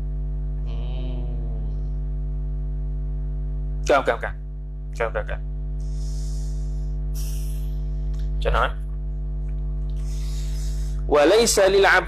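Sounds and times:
low electrical hum: 0.0s - 12.0s
person murmuring softly: 0.7s - 1.9s.

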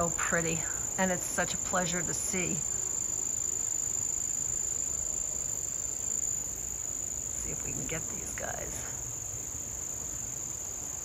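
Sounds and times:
faint outdoor background noise: 0.0s - 11.0s
insects singing: 0.0s - 11.0s.

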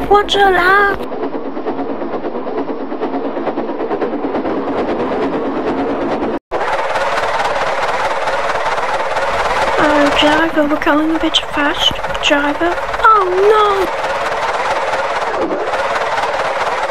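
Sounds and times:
steam locomotive chuffing: 0.0s - 16.9s.

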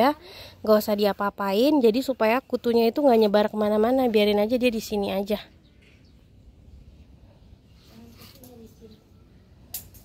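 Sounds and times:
faint distant voices: 5.4s - 10.0s.

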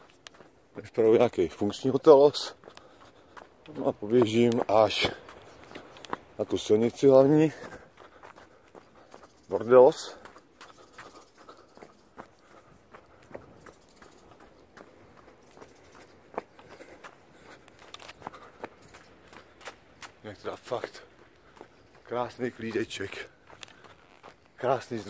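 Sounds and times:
footsteps running on sandy dirt: 0.0s - 25.0s
person's voice: 0.8s - 2.6s, 3.7s - 5.3s, 6.4s - 7.8s, 9.5s - 10.2s, 22.1s - 23.3s, 24.6s - 25.0s.

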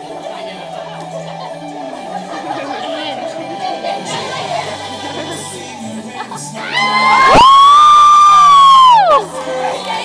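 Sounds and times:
crowd noise: 0.0s - 10.0s
faint music: 0.0s - 10.0s.

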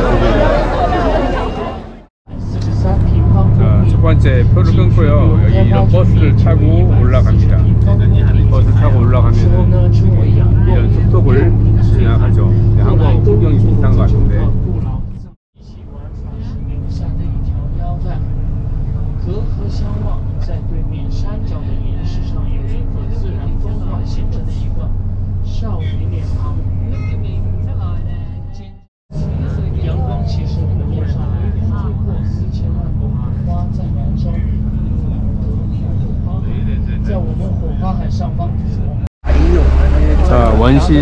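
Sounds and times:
bus engine and road rumble: 0.0s - 41.0s
passengers talking: 0.0s - 41.0s.

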